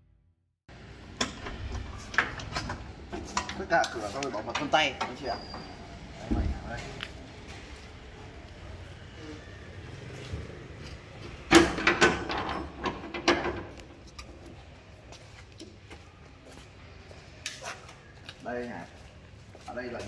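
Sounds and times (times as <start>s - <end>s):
metal door clanking and rattling: 11.3s - 14.0s.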